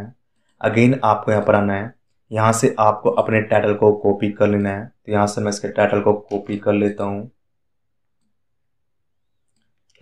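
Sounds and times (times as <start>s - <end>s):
person speaking: 0.0s - 7.6s
computer mouse clicks: 9.4s - 10.0s.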